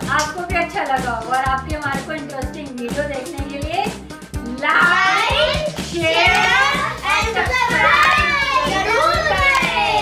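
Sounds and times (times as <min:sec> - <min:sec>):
children calling out: 0:04.8 - 0:10.0.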